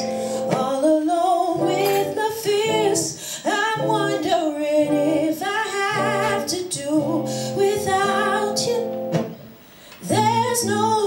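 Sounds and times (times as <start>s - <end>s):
woman singing with vibrato: 0.0s - 9.4s, 10.0s - 11.0s
guitar: 0.0s - 11.0s.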